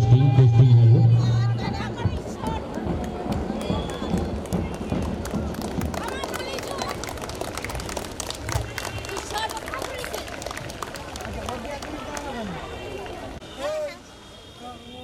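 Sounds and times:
people's voices: 0:00.0 - 0:15.0.

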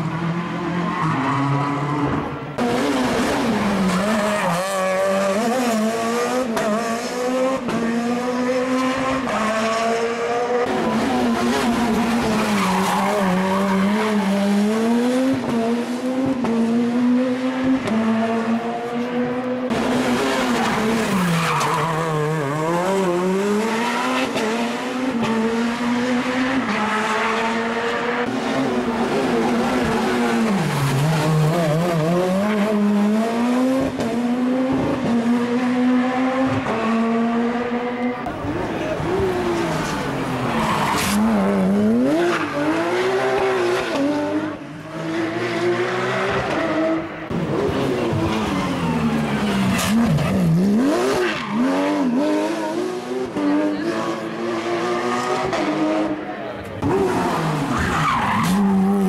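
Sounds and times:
rally car engine revving: 0:00.0 - 0:59.0.

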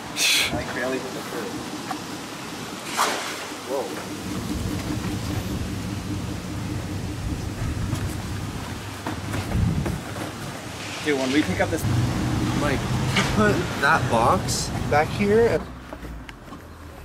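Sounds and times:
traffic on a wet street: 0:00.0 - 0:17.0.

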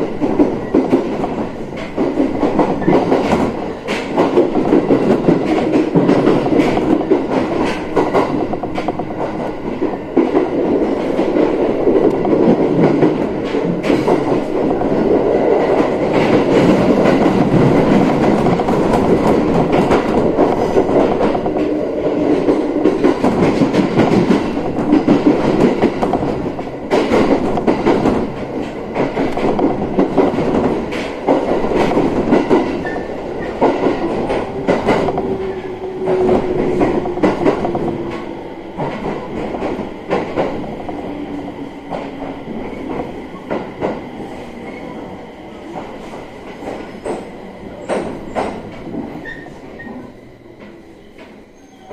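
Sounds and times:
train wheels clacking over rail joints: 0:00.0 - 0:51.9.

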